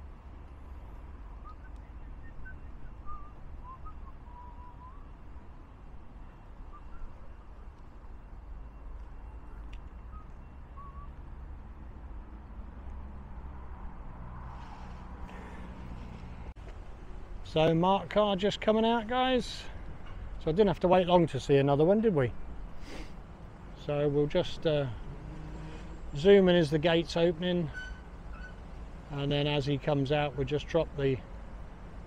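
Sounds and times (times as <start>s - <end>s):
distant road traffic rumble: 0.0s - 32.0s.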